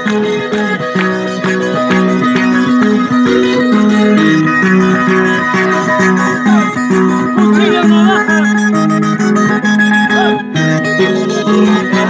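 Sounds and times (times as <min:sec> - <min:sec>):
acoustic guitar music through speaker: 0:00.0 - 0:12.0.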